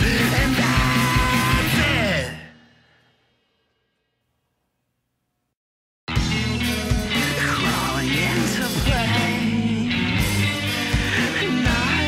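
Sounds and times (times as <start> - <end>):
punk rock band playing: 0.0 - 2.4, 6.1 - 12.0.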